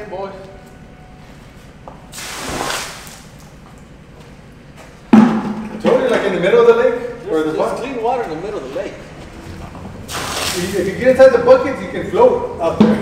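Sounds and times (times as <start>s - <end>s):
water splashing onto ground: 2.2s - 3.3s, 10.1s - 10.9s.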